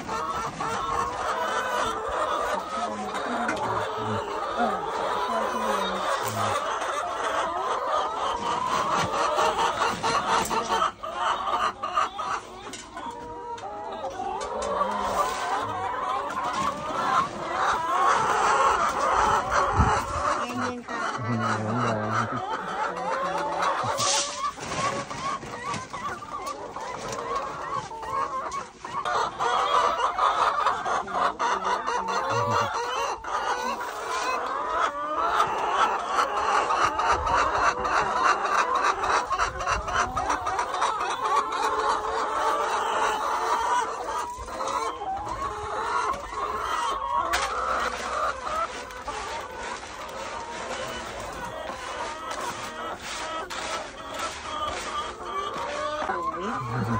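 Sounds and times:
hens clucking: 0.0s - 56.9s.

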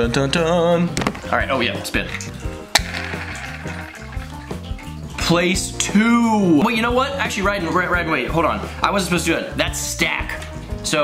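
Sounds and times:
background music with bass: 0.0s - 11.0s
spinner spinning with rasp: 2.8s - 4.8s.

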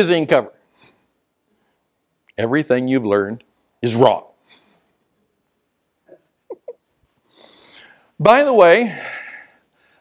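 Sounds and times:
soft breathy intake of breath: 7.2s - 8.2s.

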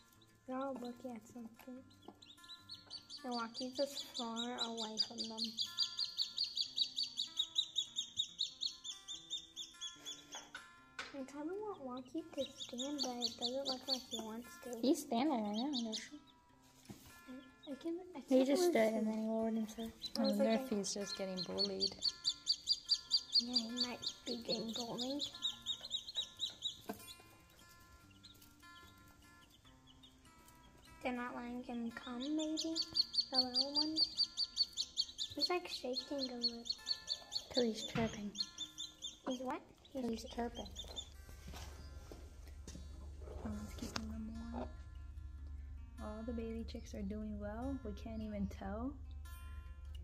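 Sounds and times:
baby chick peeping: 0.0s - 16.4s, 17.0s - 45.2s.

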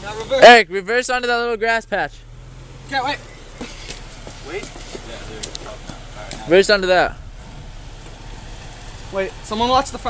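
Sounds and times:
engine running at low revs: 0.0s - 10.0s.

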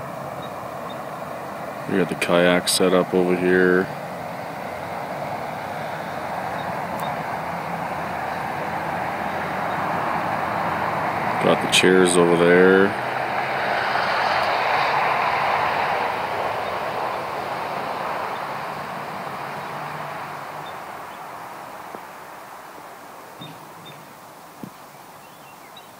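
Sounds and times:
steady rushing noise: 0.0s - 25.4s.

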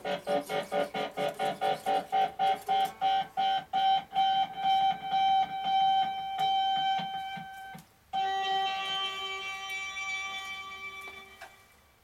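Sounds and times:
electric guitar picking high note: 3.0s - 11.7s.

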